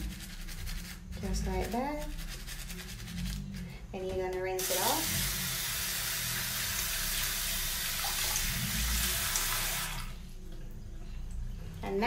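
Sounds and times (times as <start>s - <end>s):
nail brush scrubbing fingernails: 0.0s - 5.4s.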